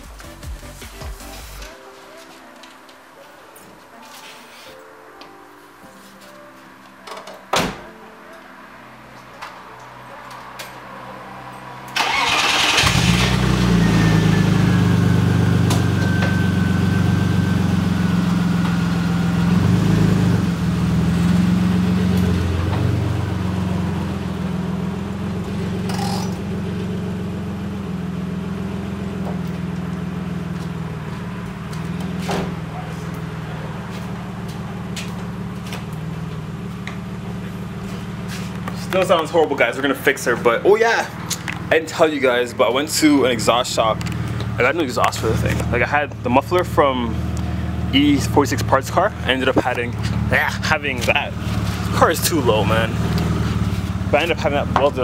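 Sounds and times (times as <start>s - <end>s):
car engine starting and running: 10.3s - 55.0s.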